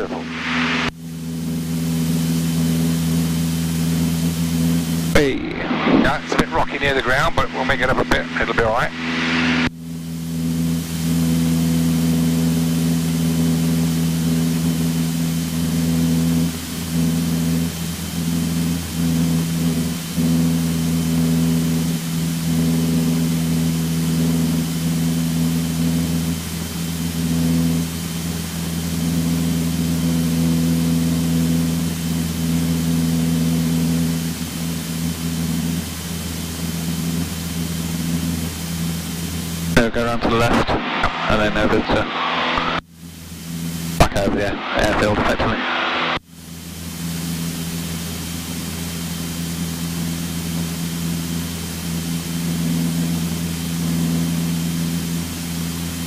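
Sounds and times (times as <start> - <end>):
aircraft engine and propeller droning: 0.0 - 56.0
faint high whine: 0.0 - 56.0.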